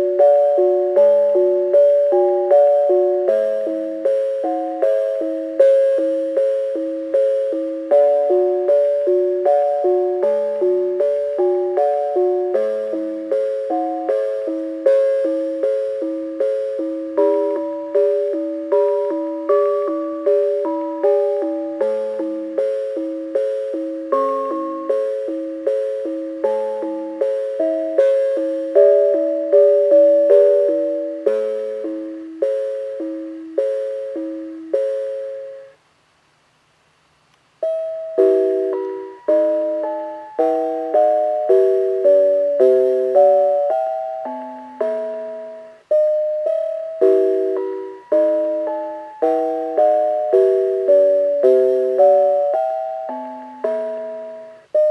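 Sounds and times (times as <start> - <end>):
brass bells playing a tune: 37.7 - 54.9.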